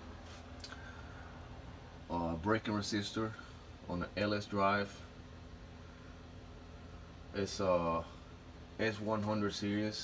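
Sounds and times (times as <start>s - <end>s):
machinery hum: 0.0s - 10.0s.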